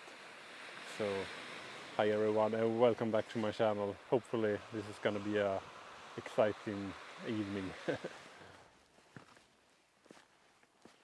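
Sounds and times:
small waves on a stony shore: 0.0 - 9.0.

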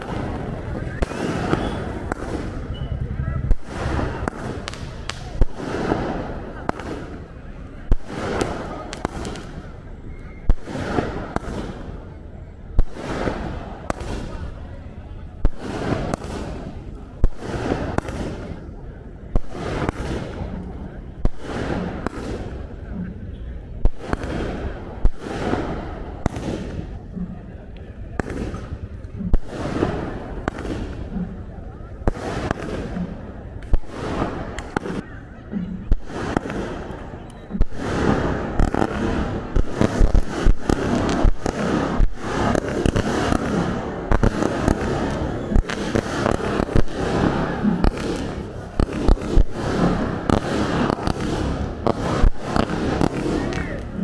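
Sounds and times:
fireworks bangs and crackling: 0.0 - 54.0.

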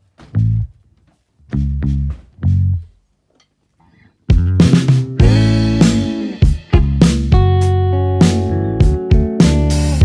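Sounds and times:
low plucked guitar notes: 4.3 - 10.0.

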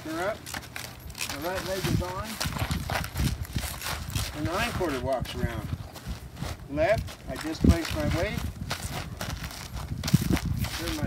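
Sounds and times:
horse hooves on dirt: 0.0 - 11.0.

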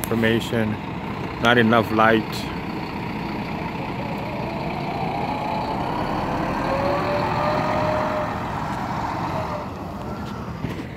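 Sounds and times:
bus engine running: 0.0 - 10.9.

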